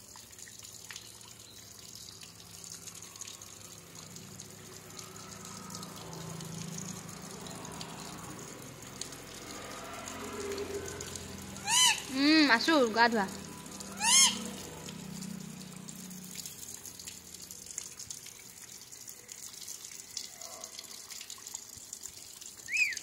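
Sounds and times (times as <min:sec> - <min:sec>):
water splashing onto wire cage: 0:00.0 - 0:23.0.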